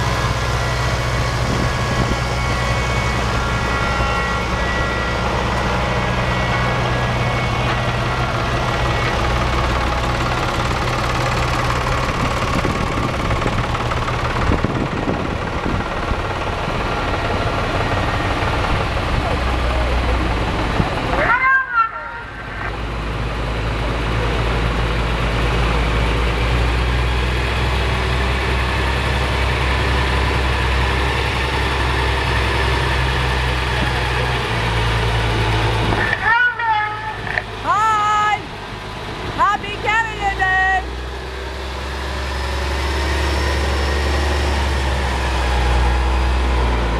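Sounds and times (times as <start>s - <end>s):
diesel engines running at low speed: 0.0s - 46.9s.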